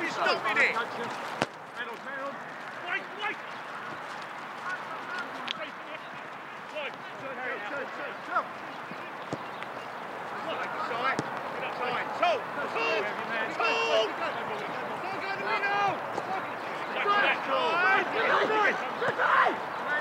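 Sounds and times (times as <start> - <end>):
distant players shouting: 0.0 - 20.0.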